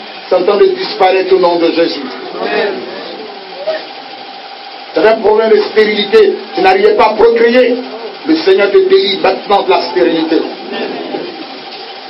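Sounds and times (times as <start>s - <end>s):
machine-like hum: 0.0s - 12.0s.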